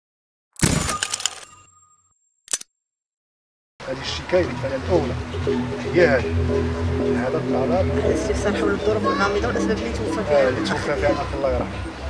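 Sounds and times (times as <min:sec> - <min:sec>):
sharp shutter-like click: 0:00.6 - 0:01.6, 0:02.5 - 0:02.7
person speaking: 0:03.8 - 0:11.8
background music: 0:03.8 - 0:12.0.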